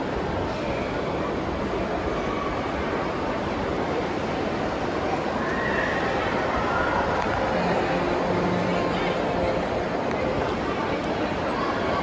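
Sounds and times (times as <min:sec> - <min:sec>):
echoing crowd noise: 0:00.0 - 0:12.0.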